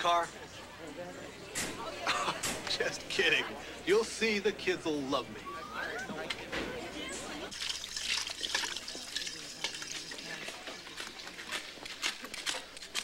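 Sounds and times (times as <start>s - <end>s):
liquid poured into steel bowl: 7.5s - 10.5s
kitchen utensils clinking: 7.5s - 13.0s
stirring in a bowl: 7.5s - 13.0s.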